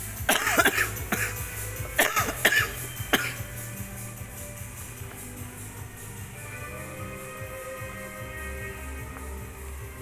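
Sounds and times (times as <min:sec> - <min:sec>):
background music: 0:00.0 - 0:10.0
person coughing: 0:00.3 - 0:01.4, 0:02.0 - 0:03.4.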